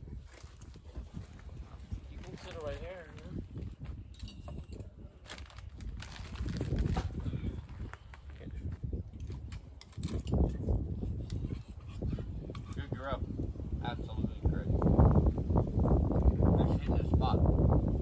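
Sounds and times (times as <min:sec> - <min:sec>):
wind gusting over microphone: 0:00.0 - 0:18.0.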